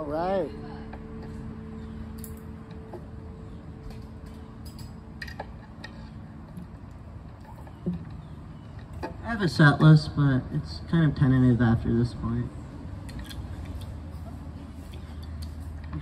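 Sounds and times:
low speaker hum: 0.0 - 16.0.

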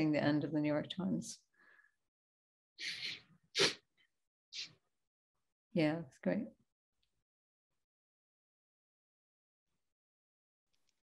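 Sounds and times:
person sneezing: 2.8 - 3.9.

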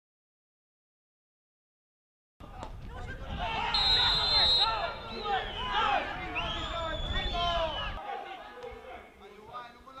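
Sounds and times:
players shouting: 2.4 - 9.4
referee's whistle blast: 3.7 - 8.0.

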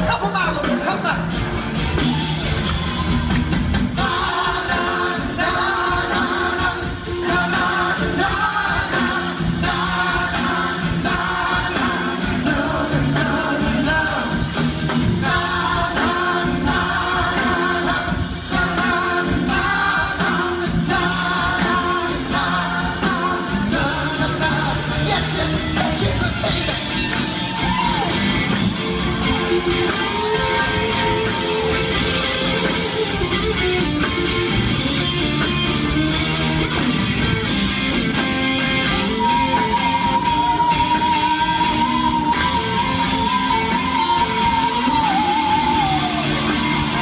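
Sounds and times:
live rock band playing: 0.0 - 47.0.

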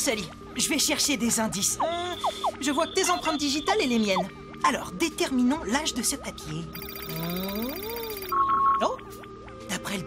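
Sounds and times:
quick electronic beeps: 6.7 - 8.9
warbling electronic tone: 6.8 - 8.8.

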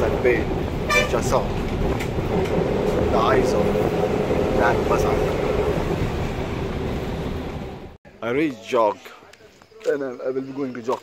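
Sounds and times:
bus engine and road noise: 0.0 - 8.0.

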